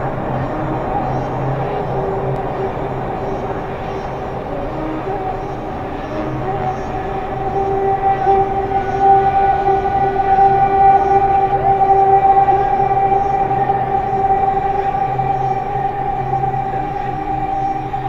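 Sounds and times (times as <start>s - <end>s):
electronic drone held tones: 0.0s - 18.0s.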